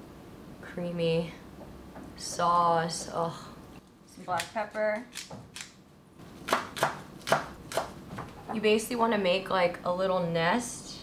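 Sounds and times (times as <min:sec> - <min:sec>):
knife chopping on wooden board: 0:06.4 - 0:08.0.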